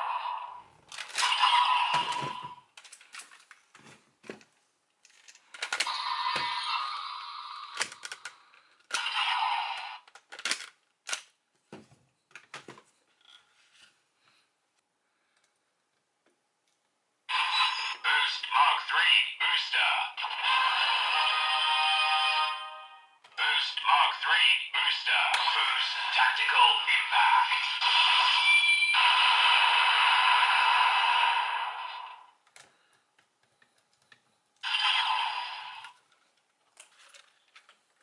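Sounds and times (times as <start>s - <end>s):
toy electronic sound effects: 1.0s - 2.6s, 5.8s - 8.1s, 8.9s - 10.0s, 17.3s - 22.7s, 23.4s - 32.3s, 34.6s - 36.0s
plastic toy clicks: 10.0s - 11.3s
toy electronic whooshing effect: 25.4s - 32.2s.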